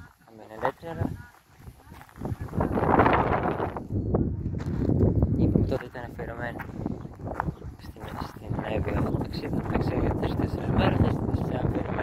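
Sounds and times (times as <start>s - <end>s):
wind buffeting microphone: 0.0s - 12.0s
footsteps on gravel: 0.1s - 3.2s, 4.4s - 9.7s.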